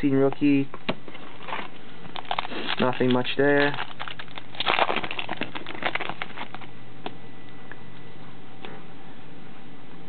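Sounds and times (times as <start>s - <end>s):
foil wrapper crinkling and tearing: 1.1s - 6.7s.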